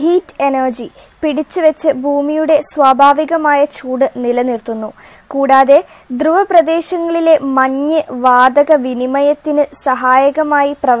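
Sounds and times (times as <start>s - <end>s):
woman narrating: 0.0s - 11.0s.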